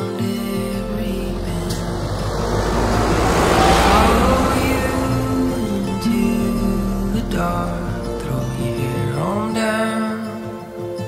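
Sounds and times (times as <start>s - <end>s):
soft music: 0.0s - 11.0s
tractor engine: 0.4s - 9.8s.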